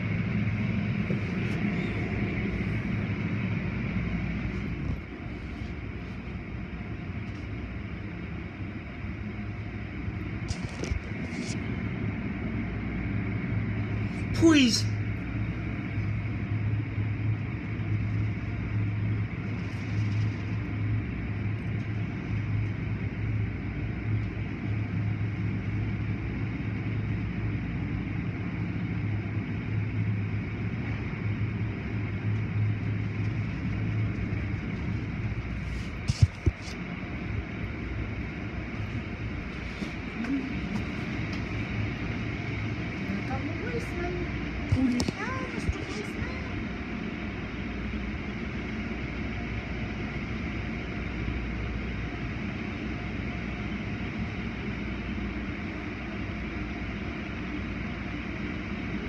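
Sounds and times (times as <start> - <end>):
car wash machinery hum: 0.0 - 59.0.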